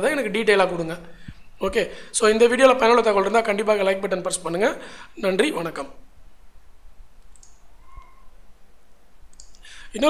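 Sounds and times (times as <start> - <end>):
computer mouse clicking: 7.2 - 8.2, 9.3 - 9.6.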